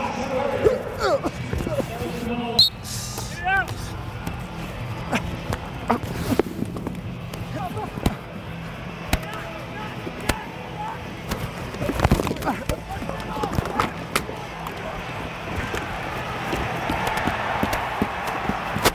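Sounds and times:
arena crowd noise: 0.0s - 18.9s
shoe squeaks: 1.6s - 3.9s.

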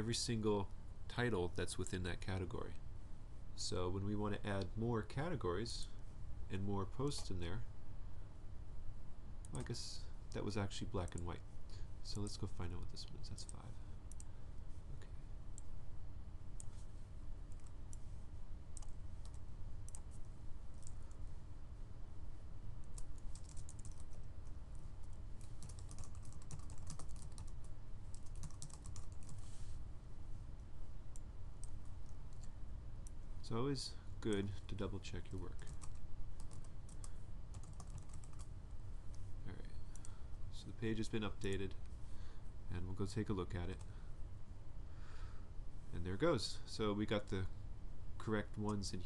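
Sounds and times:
steady low hum: 0.0s - 49.0s
typing on computer keyboard: 23.0s - 24.2s, 25.4s - 29.4s, 35.6s - 38.5s.

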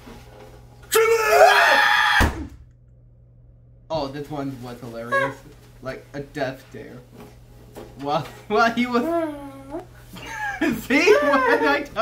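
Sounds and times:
low room hum: 0.0s - 12.0s
person yelling: 0.9s - 2.4s, 11.0s - 11.8s
person speaking: 4.3s - 6.1s, 8.5s - 9.9s.

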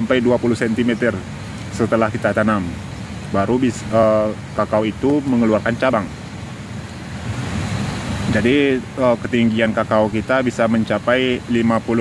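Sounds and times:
wind on microphone: 6.4s - 9.0s.

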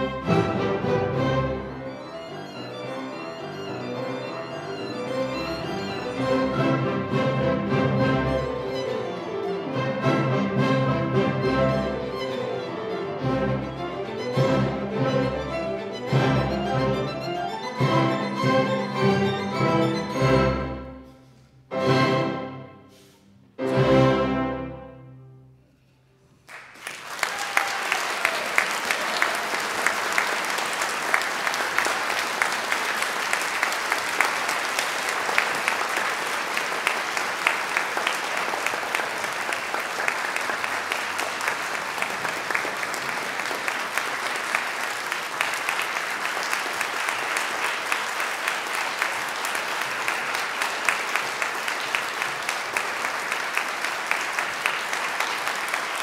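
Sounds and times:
audience applause: 26.4s - 56.0s.

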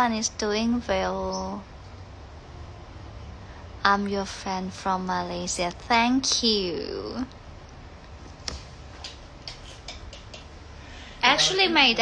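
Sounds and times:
low steady room noise: 0.0s - 12.0s.

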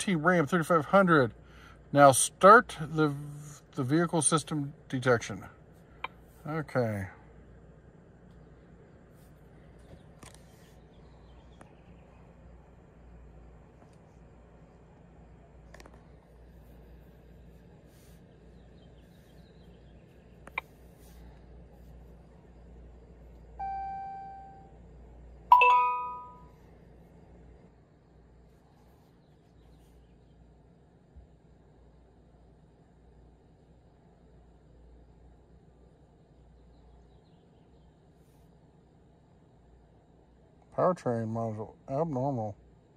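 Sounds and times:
low steady hum: 0.0s - 42.9s
electronic chime tones: 23.6s - 24.7s, 25.5s - 26.5s.

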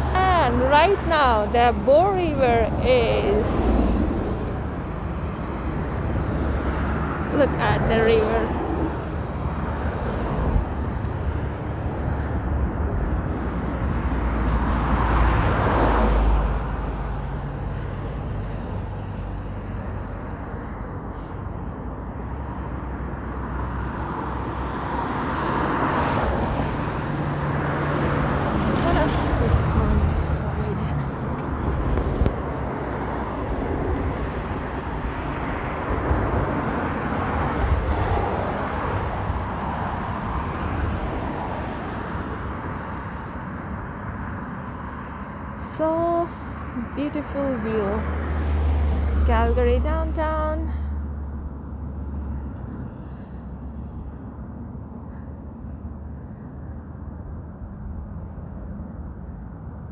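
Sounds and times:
road traffic: 0.0s - 59.9s
vehicles passing close by: 0.0s - 59.9s.

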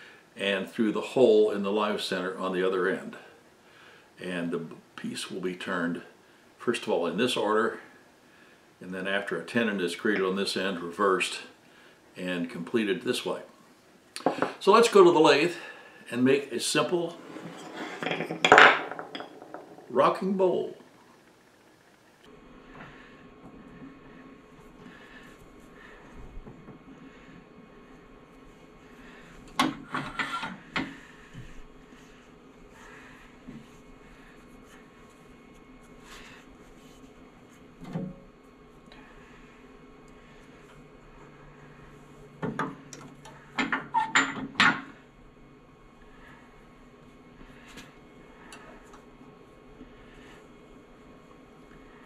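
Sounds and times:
wood knocking on tabletop: 14.2s - 14.6s.

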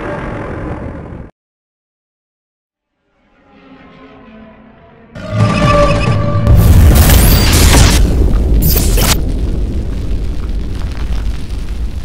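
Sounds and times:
music: 4.8s - 7.3s.

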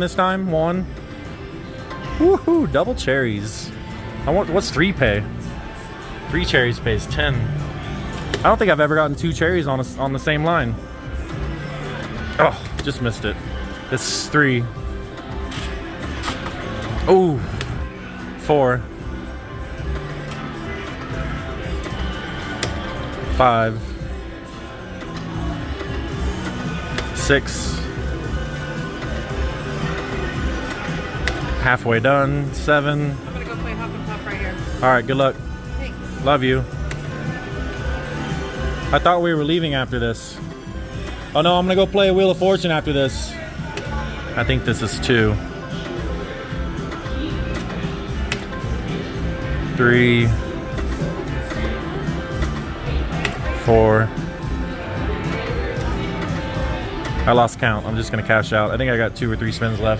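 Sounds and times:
slot machine music and tones: 0.0s - 59.9s.

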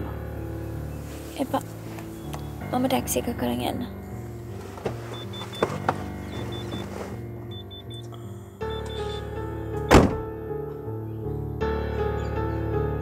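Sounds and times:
car door shutting: 4.5s - 8.1s, 8.8s - 10.3s.

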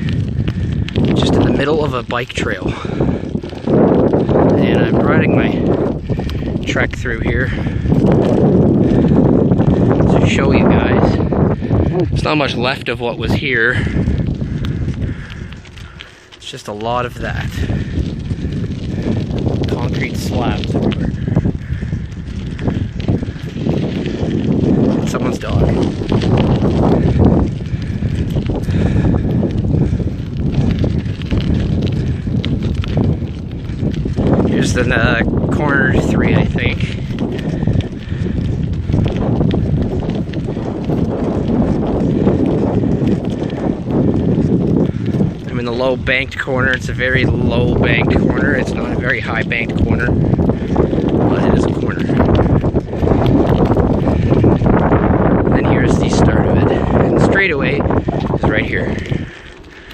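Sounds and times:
bicycle tyres on dirt trail: 0.0s - 59.9s
wind buffeting microphone: 0.0s - 59.9s.

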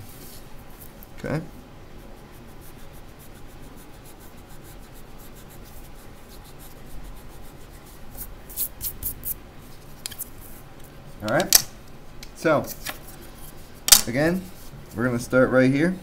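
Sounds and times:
pencil scratching on paper: 2.0s - 9.4s.

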